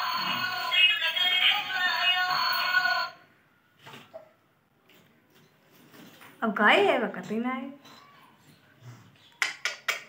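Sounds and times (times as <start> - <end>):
electronic jingle with synthesized singing: 0.0 - 3.2.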